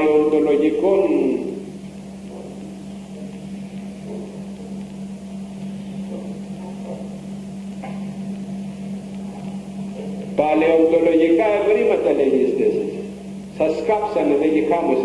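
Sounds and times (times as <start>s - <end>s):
background hiss: 0.0s - 15.0s
low electrical hum: 0.0s - 15.0s.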